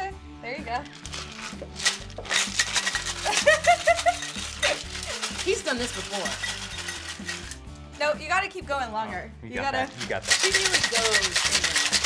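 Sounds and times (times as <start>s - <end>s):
background music: 0.0s - 12.0s
ice rattling in cocktail shaker: 0.8s - 7.8s, 9.7s - 12.0s.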